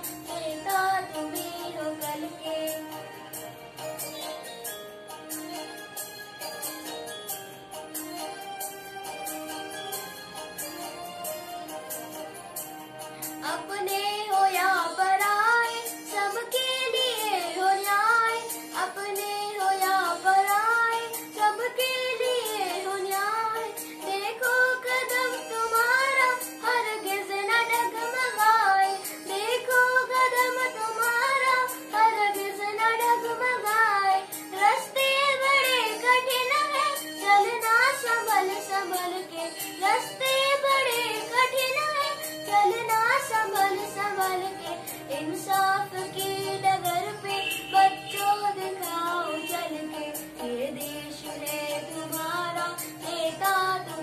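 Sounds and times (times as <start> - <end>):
boy singing: 13.4 - 42.0.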